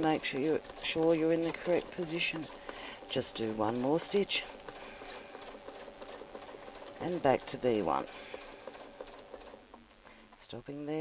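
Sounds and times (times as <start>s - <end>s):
sewing machine needle ticks: 0.0s - 9.6s.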